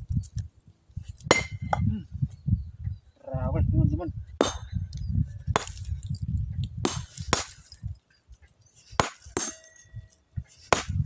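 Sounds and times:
sledgehammer striking rock: 1.3 - 1.8, 4.4 - 4.7, 5.5 - 5.8, 6.8 - 7.7, 9.0 - 9.7, 10.7 - 11.0.

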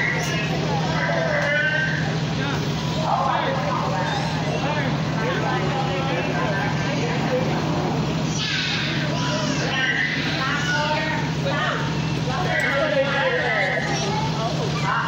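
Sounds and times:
indistinct chatter of voices: 0.0 - 15.0
steady low hum: 0.0 - 15.0.

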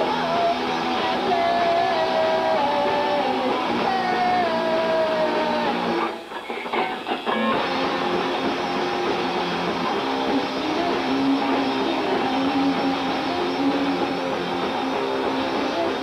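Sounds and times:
electric guitar through amplifier: 0.0 - 16.0
rock band playing: 0.0 - 16.0.

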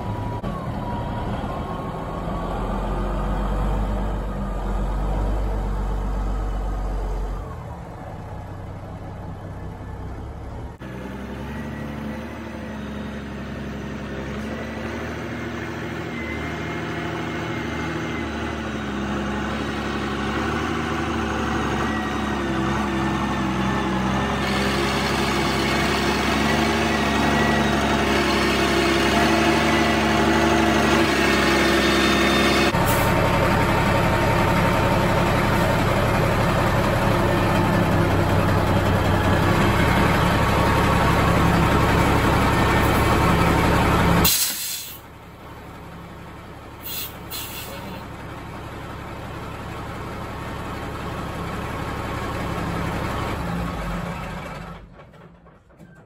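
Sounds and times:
diesel truck engine running: 0.0 - 56.0.

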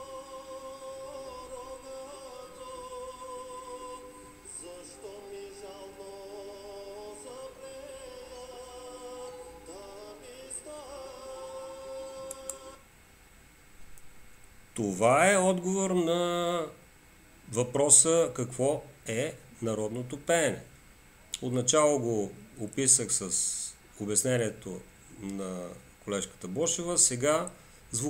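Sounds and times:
man singing folk song: 0.0 - 12.6.

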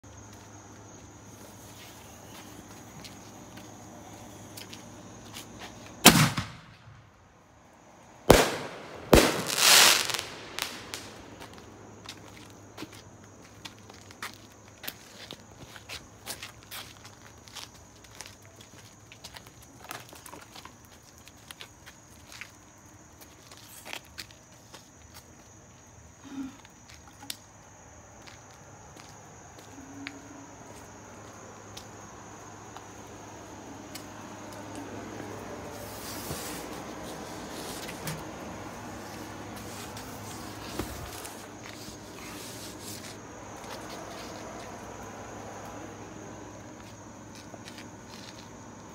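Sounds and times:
firework pops and crackles: 6.0 - 7.1, 8.3 - 11.7
firework bangs: 6.0 - 7.2, 8.2 - 11.7.

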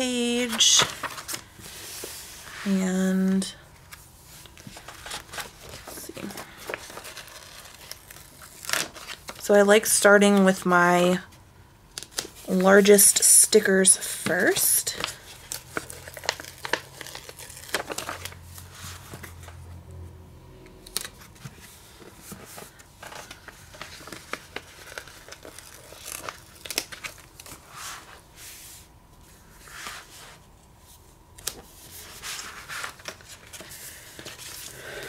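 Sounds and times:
paper sheets crinkling: 0.2 - 2.8, 3.8 - 9.8, 14.0 - 19.6, 21.0 - 28.2, 31.4 - 35.0.

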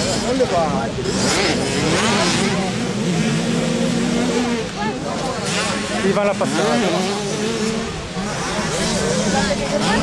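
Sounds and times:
people talking nearby: 0.0 - 10.0
two-stroke motocross bike engines: 0.0 - 10.0.

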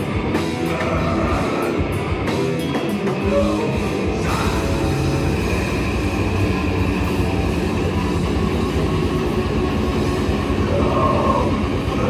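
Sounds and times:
bass guitar: 0.0 - 12.0
distorted electric guitar: 0.0 - 12.0
drums: 0.0 - 12.0
heavy rock band playing: 0.0 - 12.0.

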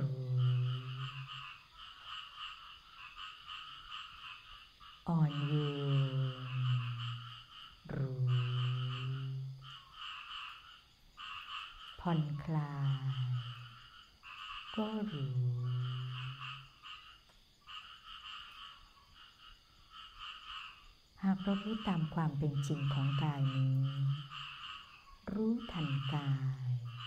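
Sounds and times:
frogs calling: 0.0 - 27.0
person speaking slowly: 7.9 - 9.6.

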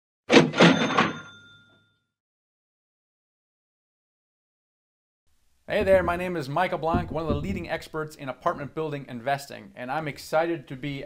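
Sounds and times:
cash register clatter: 0.3 - 1.7
cash register bell ring: 0.4 - 2.1.

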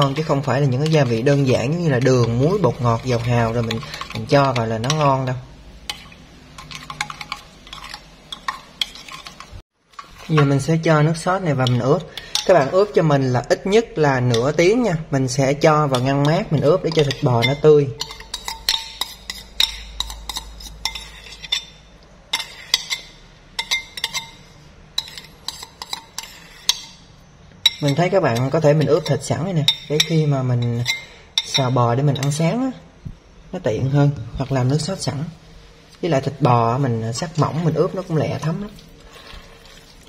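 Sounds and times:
spoon clinking against glass bowl: 0.0 - 5.2, 15.8 - 27.0, 27.6 - 32.5.

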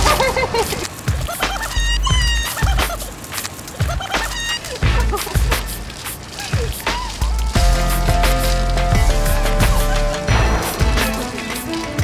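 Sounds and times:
hip-hop beat: 0.0 - 12.0.

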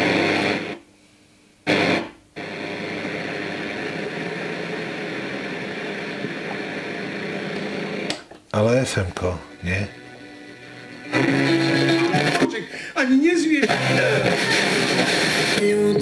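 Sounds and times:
radio static hiss: 0.0 - 0.9, 1.6 - 16.0.

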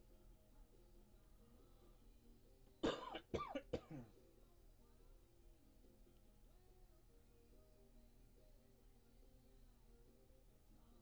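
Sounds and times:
person coughing: 2.8 - 4.1.

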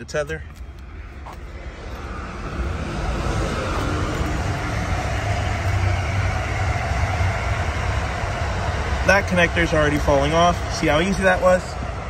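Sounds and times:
passing road vehicle rumble: 0.6 - 12.0.

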